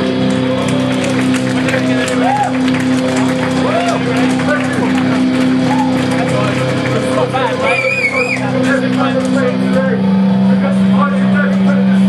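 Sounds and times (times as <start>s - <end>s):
amplifier low drone: 0.0s - 12.0s
voices: 0.4s - 12.0s.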